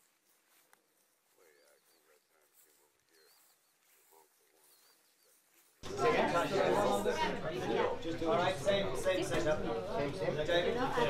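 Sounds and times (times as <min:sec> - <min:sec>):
faint distant voices: 0:00.5 - 0:11.0.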